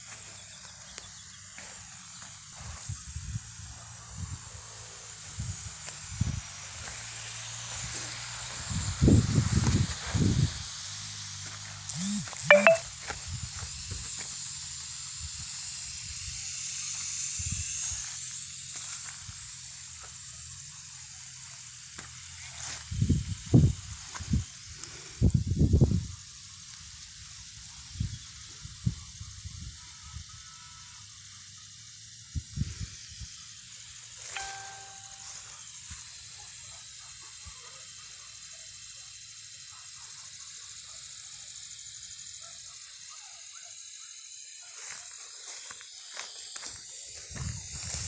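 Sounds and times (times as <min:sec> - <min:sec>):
brushing rustle of plants: 0:00.0 - 0:10.6, 0:11.2 - 0:12.0, 0:17.7 - 0:20.4, 0:21.4 - 0:26.1, 0:35.2 - 0:36.2, 0:44.6 - 0:48.0
open field ambience hiss: 0:00.0 - 0:48.0
beep-like tone: 0:12.0 - 0:12.8.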